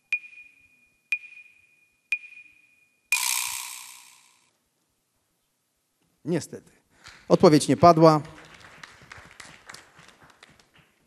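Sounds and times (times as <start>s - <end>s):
short timer beeps: 0.0s - 4.4s.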